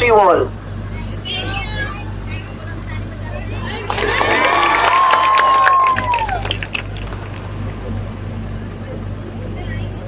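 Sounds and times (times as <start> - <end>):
children shouting and cheering: 3.5 - 6.7.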